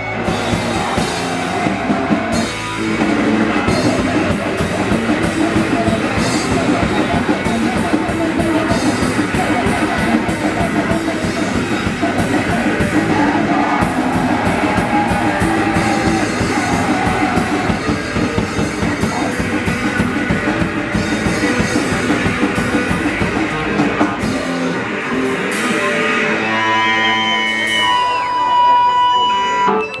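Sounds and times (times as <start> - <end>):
guitar feedback tones: 0.0 - 30.0
punk band playing live: 0.0 - 30.0.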